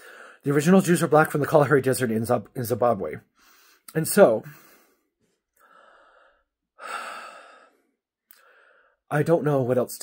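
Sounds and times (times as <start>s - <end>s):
man breathing: 0.0s - 0.4s, 3.3s - 9.1s.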